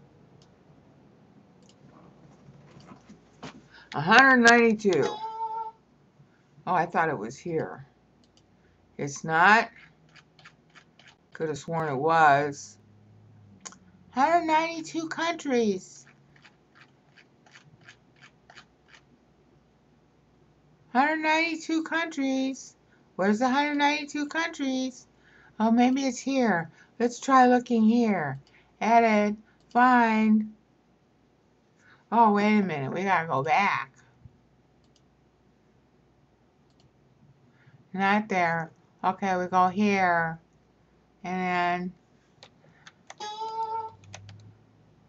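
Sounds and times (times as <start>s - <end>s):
low room hiss: 0.0s - 45.0s
mouse scroll wheel clicks: 9.8s - 11.2s, 16.0s - 19.0s, 44.0s - 44.5s.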